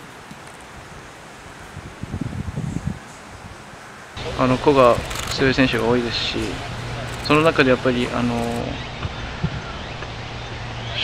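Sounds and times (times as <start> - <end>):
outdoor background noise: 0.0 - 11.0
low hum: 4.2 - 11.0.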